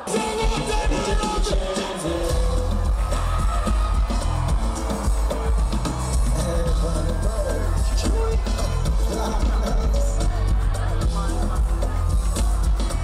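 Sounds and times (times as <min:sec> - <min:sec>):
crowd shouting: 0:00.0 - 0:13.0
heavy bass beat: 0:00.0 - 0:13.0
singer performing live: 0:00.0 - 0:13.0.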